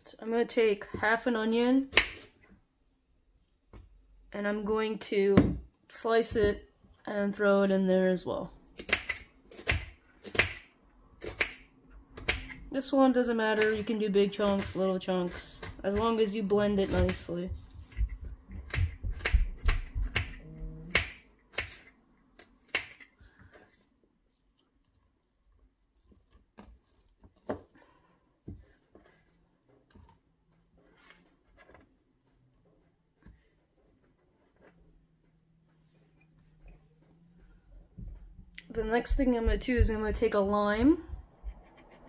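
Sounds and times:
knife chopping onion: 13.5 - 23.1.

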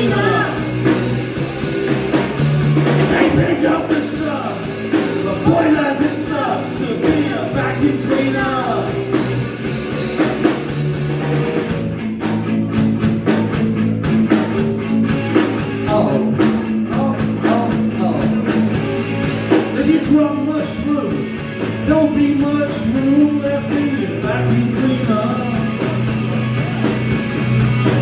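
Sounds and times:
drum kit: 0.0 - 28.0
electric bass: 0.0 - 28.0
electric guitar: 0.0 - 28.0.

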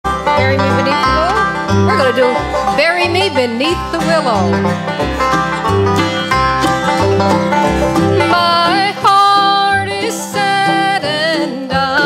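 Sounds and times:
upright bass: 0.0 - 12.0
acoustic guitar: 0.1 - 12.0
banjo: 0.1 - 12.0
mandolin: 0.1 - 12.0.

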